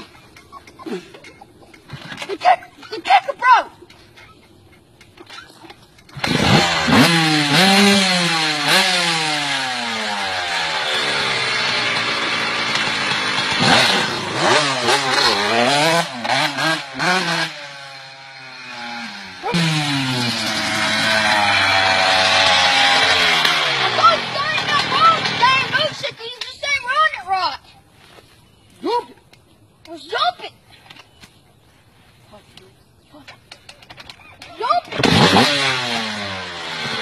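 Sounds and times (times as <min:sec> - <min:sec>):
dirt bike kick-start: 0:00.0 - 0:26.8, 0:33.2 - 0:37.0
dirt bike engine revving: 0:05.2 - 0:26.2, 0:34.6 - 0:37.0.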